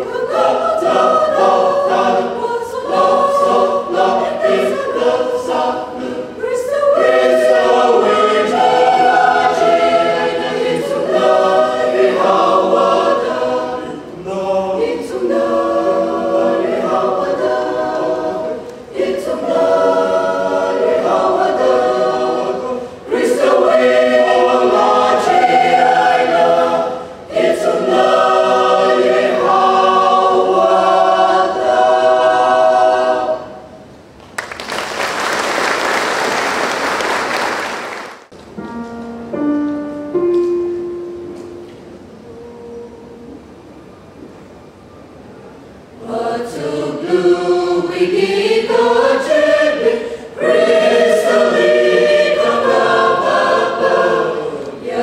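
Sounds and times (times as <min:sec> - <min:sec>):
mixed choir singing: 0:00.0 - 0:33.9, 0:45.6 - 0:55.0.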